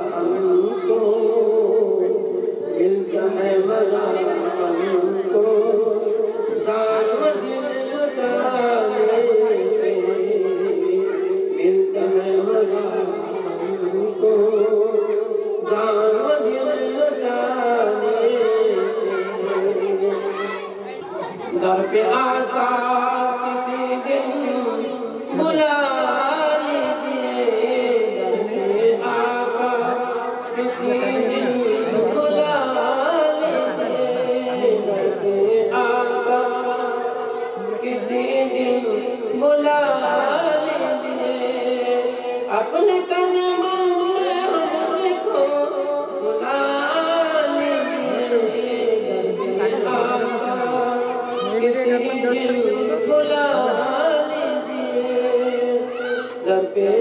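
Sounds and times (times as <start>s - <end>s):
man chanting into a microphone: 0.0s - 57.0s
man singing devotional song: 0.0s - 57.0s.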